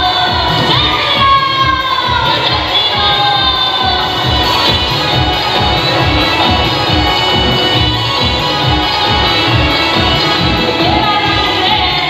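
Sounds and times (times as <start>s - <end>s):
crowd noise: 0.0s - 12.0s
live music over loudspeakers: 0.0s - 12.0s.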